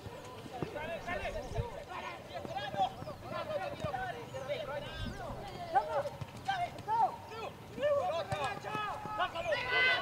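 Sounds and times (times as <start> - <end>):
voices shouting short calls: 0.8 - 10.0.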